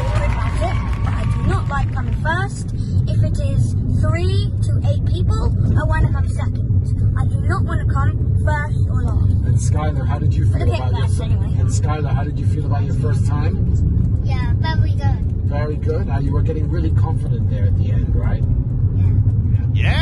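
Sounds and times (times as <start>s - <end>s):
car cabin rumble: 0.0s - 20.0s
child talking: 0.1s - 9.3s, 14.2s - 15.2s.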